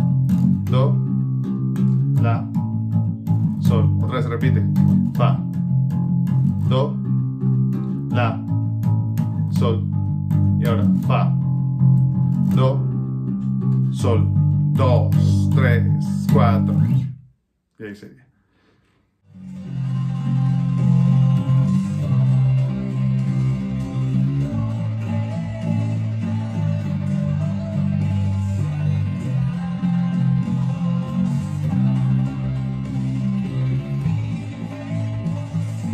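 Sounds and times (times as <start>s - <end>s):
backing music: 0.0s - 17.1s, 19.3s - 35.9s
electric bass guitar held notes: 0.0s - 17.2s, 19.3s - 35.9s.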